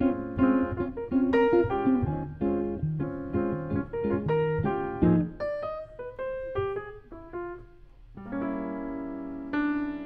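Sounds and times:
grand piano chords: 0.0 - 10.0.

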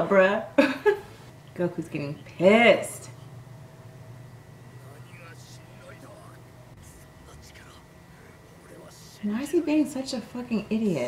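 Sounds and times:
steady low hum: 0.0 - 11.0
faint quiet speech: 4.8 - 9.2.

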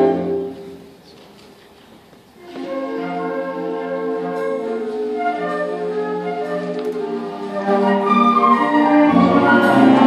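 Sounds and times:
wind band playing sustained chords: 0.0 - 1.0, 2.4 - 10.0.

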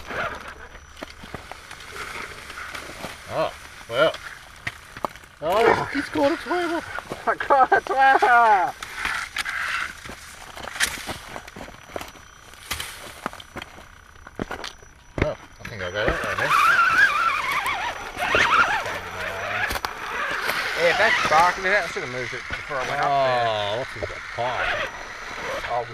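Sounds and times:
rc crawler clicking over rock: 0.0 - 25.9.

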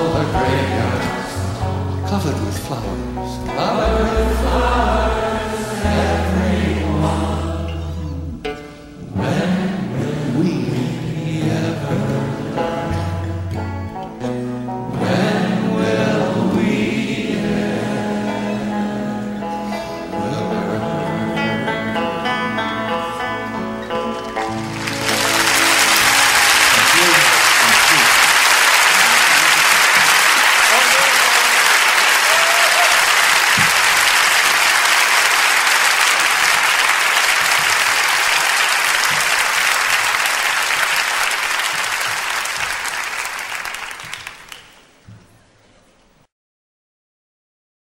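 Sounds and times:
plucked string notes: 0.0 - 28.0
audience applause: 24.0 - 44.9.

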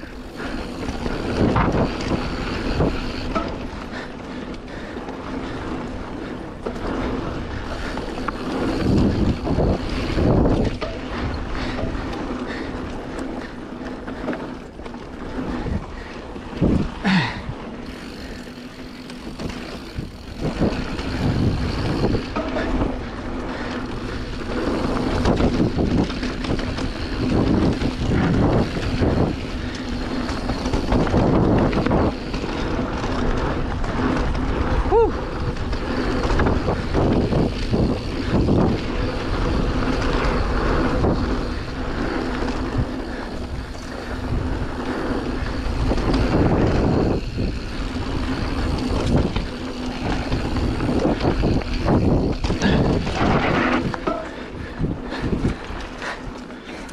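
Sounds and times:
bike clattering over bumps: 0.0 - 56.9
bike tyres rolling on dirt: 0.0 - 56.9.

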